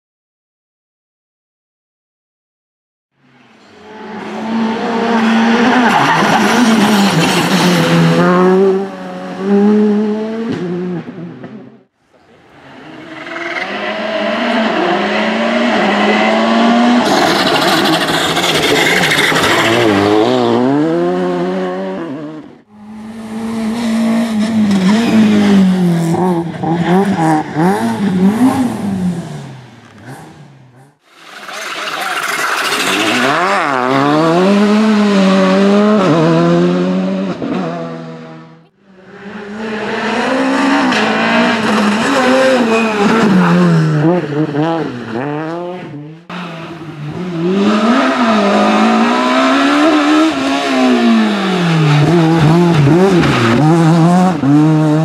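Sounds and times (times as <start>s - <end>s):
rally cars passing: 3.2s - 55.0s.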